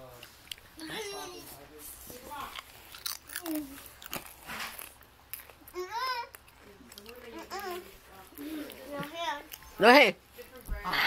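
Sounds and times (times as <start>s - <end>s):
children's voices: 0.8s - 1.6s
watermelon being bitten and chewed: 2.2s - 7.7s.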